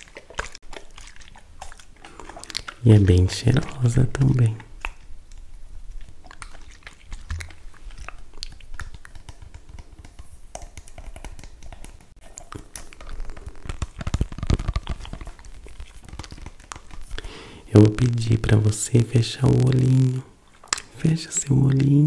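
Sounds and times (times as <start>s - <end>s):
rustling: 4.7s - 18.1s.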